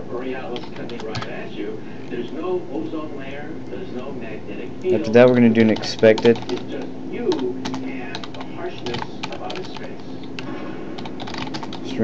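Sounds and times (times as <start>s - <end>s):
keyboard typing: 0.5s - 1.3s, 4.9s - 11.9s.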